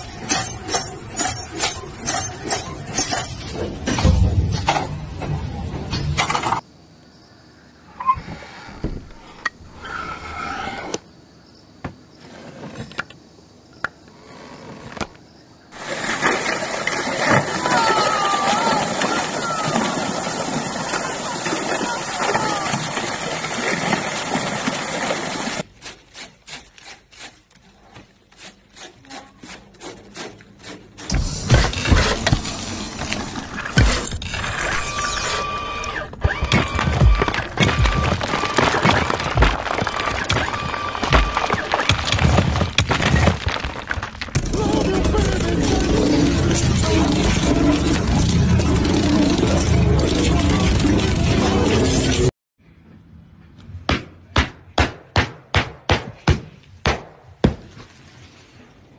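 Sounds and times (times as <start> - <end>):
saw stroke cutting insulation: 25.6 - 32.9
cabbage rasping on a grater: 25.8 - 31.1.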